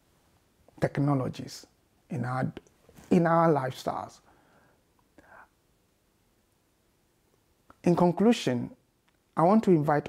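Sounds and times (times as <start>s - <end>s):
faint breath: 4.2s - 5.6s.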